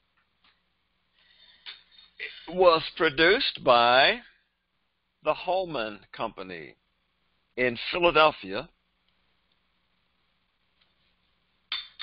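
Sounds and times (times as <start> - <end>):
person speaking: 2.2 - 4.3, 5.2 - 6.8, 7.6 - 8.7.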